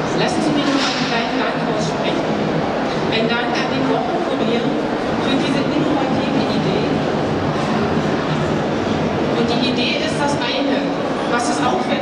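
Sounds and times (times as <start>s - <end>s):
murmur of many people: 0.0s - 12.0s.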